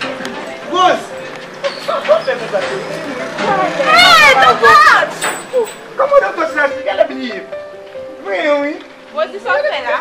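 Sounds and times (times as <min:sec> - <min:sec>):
people calling out: 0:03.2 - 0:05.9.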